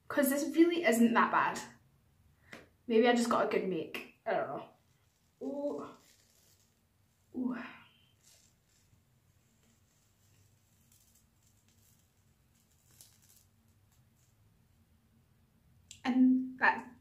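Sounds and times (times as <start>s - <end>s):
peel mask crackling off skin: 4.8s - 6.9s, 8.0s - 14.5s.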